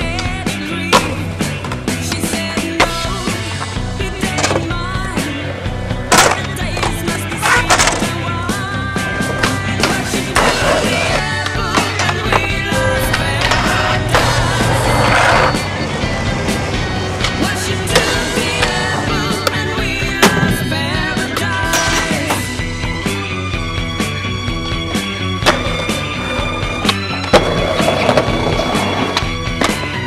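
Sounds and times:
skateboard wheels rolling: 0.0 - 22.5, 23.6 - 30.0
music track: 2.0 - 30.0.

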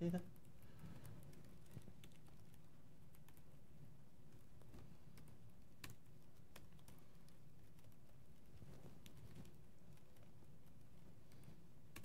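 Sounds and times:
low room hum: 0.0 - 12.0
computer keyboard keystrokes: 5.1 - 8.0.

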